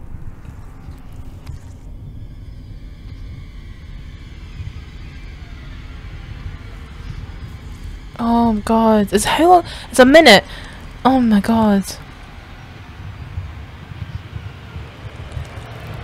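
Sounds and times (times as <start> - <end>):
high sustained tones: 0.0 - 16.0
low rumbling drone: 0.0 - 16.0.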